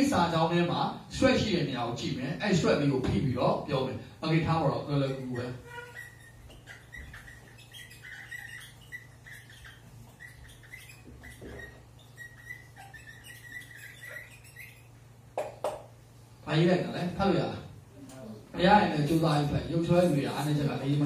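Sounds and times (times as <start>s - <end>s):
steady low hum: 0.0s - 21.0s
marker squeaking on whiteboard: 4.8s - 16.0s, 20.2s - 21.0s.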